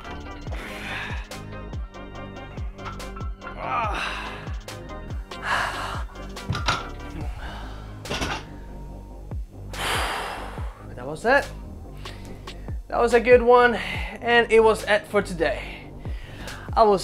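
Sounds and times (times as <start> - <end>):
music with steady beat: 0.0 - 17.0
person breathing hard: 0.5 - 1.6, 3.7 - 6.3, 7.1 - 9.0, 9.7 - 10.9, 15.7 - 16.8
dumbbells thunking on floor: 6.4 - 7.0, 8.1 - 8.5.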